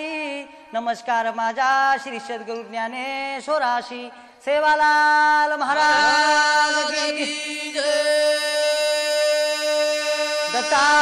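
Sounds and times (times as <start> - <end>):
person singing: 5.5 - 11.0.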